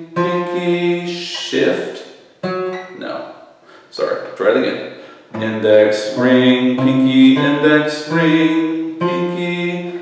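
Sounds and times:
acoustic guitar single notes: 0:00.0 - 0:10.0.

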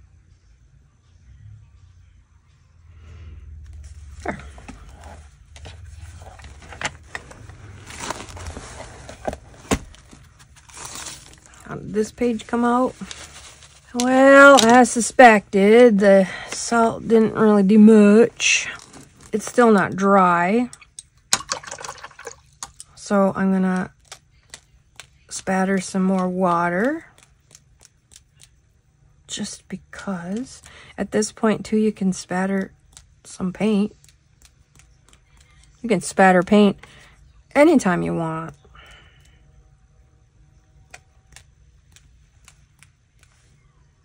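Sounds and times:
book pages turning: 0:03.7 - 0:11.6, 0:12.2 - 0:14.9, 0:26.1 - 0:28.6, 0:33.9 - 0:35.8
brush spattering water on paper: 0:20.8 - 0:22.7.

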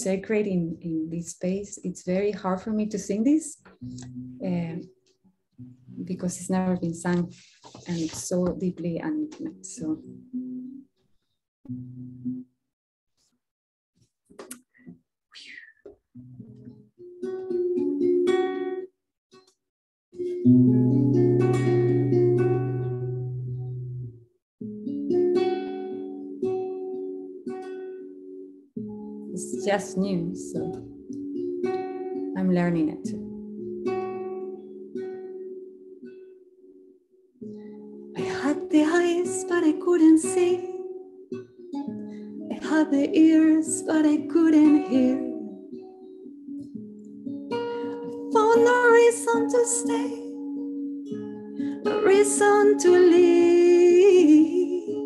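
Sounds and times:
acoustic guitar plucked: 0:03.6 - 0:05.0, 0:05.6 - 0:10.9, 0:11.7 - 0:12.5, 0:16.2 - 0:19.5, 0:20.2 - 0:55.0
woman singing: 0:38.2 - 0:40.8, 0:42.5 - 0:45.6, 0:48.3 - 0:50.4, 0:51.8 - 0:55.0.

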